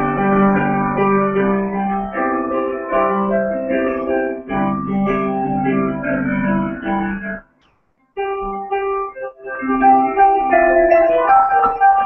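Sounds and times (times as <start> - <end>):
digital piano improvisation: 0.0 - 12.0.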